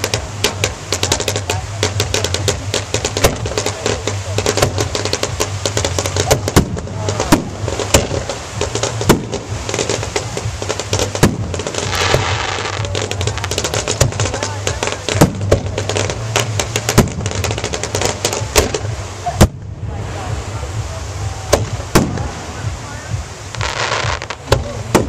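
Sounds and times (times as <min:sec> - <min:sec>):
fireworks bangs and cracks: 0:00.0 - 0:25.0
fireworks booms: 0:00.0 - 0:25.0
fireworks crackling: 0:00.0 - 0:25.0.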